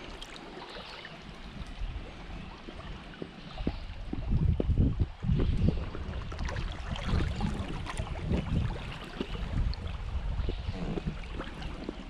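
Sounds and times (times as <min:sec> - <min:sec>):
water sloshing against boat: 0:00.0 - 0:12.0.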